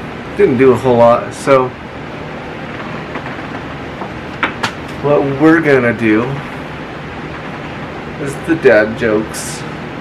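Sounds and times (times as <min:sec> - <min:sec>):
continuous hiss: 0:00.0 - 0:10.0.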